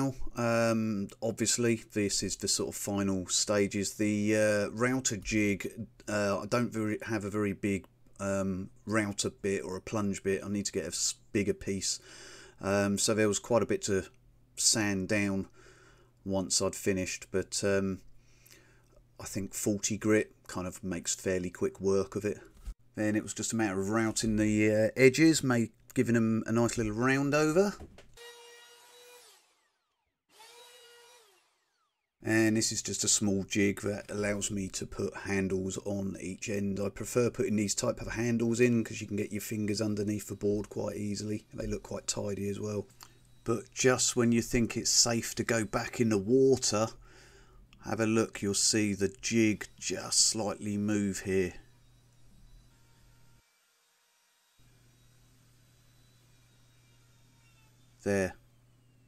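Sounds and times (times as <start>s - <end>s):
wood router whining: 27.1s - 32.2s, 48.9s - 59.0s.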